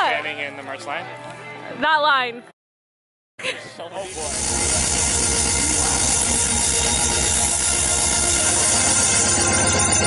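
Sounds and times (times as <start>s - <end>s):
loud distorted electronic dance music: 4.1s - 10.0s.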